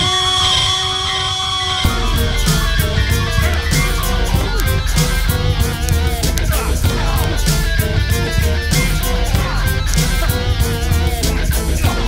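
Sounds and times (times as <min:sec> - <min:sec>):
progressive rock band: 0:00.0 - 0:12.0.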